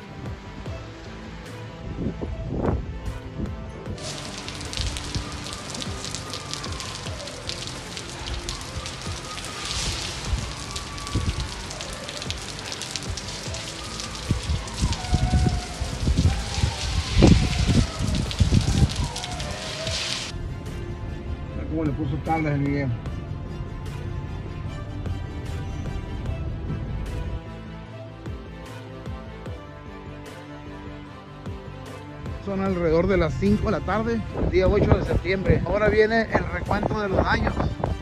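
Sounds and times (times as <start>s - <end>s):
gusting wind: 0.0s - 22.0s, 22.9s - 27.8s, 33.8s - 38.0s
background music: 0.0s - 38.0s
wind buffeting microphone: 1.8s - 21.9s, 33.4s - 38.0s
heavy rain: 4.0s - 20.3s.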